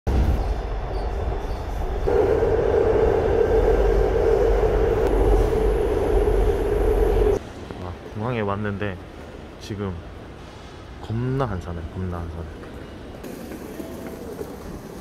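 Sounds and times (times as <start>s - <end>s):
train running rumble: 0.1s - 7.4s
steady hum: 2.1s - 7.4s.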